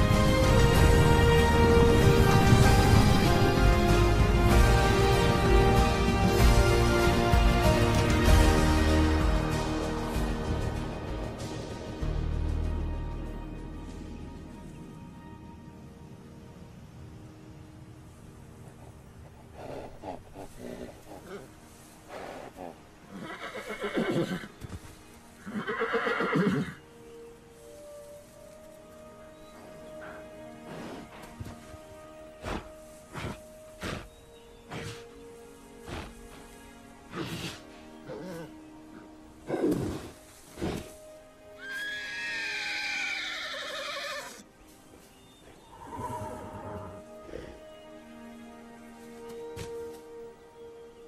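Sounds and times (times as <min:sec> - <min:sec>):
soft background music: 0:00.0 - 0:51.0
horse whinnying: 0:23.1 - 0:24.5, 0:25.4 - 0:26.8, 0:41.6 - 0:44.4, 0:45.7 - 0:47.0.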